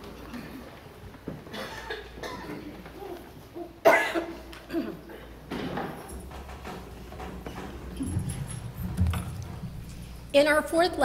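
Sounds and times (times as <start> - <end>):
rustling: 5.9 - 10.4.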